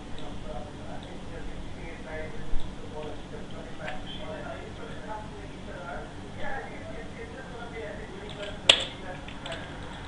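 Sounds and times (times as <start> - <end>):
faint low murmur: 0.0 - 10.0.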